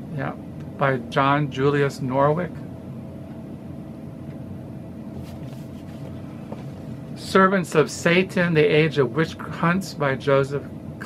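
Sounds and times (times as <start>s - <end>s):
low background hum: 0.0s - 11.0s
faint rustling of books: 5.1s - 7.2s
soft tap: 6.5s - 6.8s.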